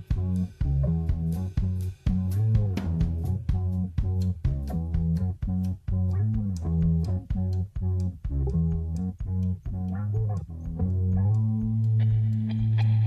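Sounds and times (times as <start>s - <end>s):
bass guitar choppy notes: 0.0s - 13.0s
guitar choppy repeated notes: 0.0s - 13.0s.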